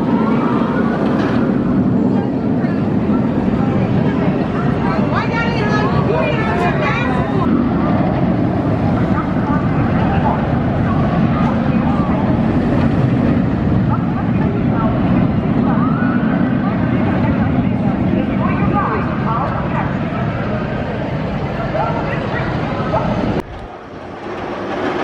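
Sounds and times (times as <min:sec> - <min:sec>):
people's voices: 0:00.0 - 0:23.6.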